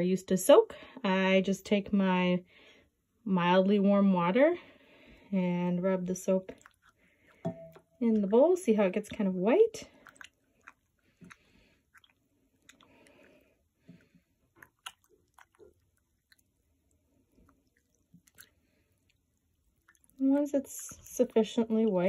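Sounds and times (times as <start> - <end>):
soap squishing in water: 5.0 - 22.0
water swishing: 9.8 - 22.0.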